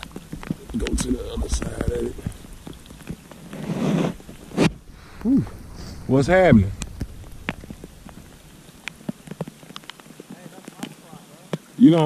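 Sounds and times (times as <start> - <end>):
kayak paddle swishing through water: 0.0 - 10.6
rain falling on water: 0.0 - 12.0.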